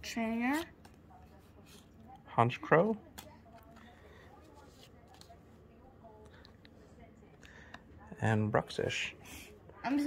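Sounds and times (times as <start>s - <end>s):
trading cards rustling: 3.0s - 5.4s.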